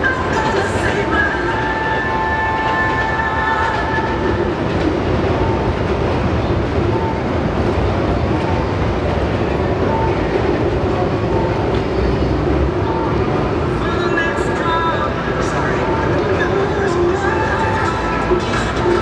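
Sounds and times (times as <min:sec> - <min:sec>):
passing train rumble and clatter: 0:00.0 - 0:19.0.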